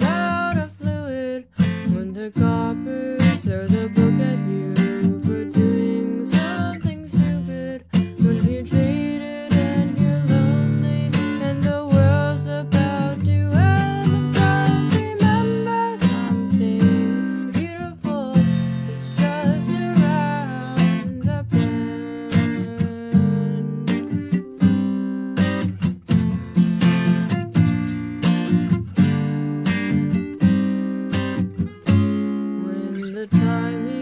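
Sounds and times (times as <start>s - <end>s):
acoustic guitar strumming chords: 0.0s - 34.0s.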